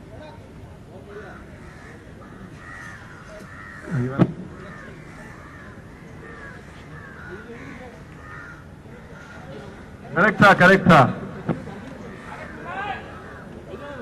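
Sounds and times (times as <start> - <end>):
crows cawing: 1.1 - 10.1, 11.6 - 14.0.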